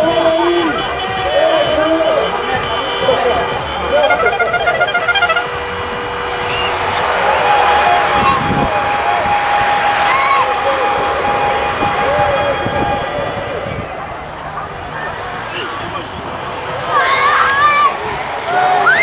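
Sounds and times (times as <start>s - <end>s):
music over loudspeakers: 0.0s - 14.0s
long steady horn tone: 0.0s - 14.4s
spectators shouting: 0.0s - 19.0s.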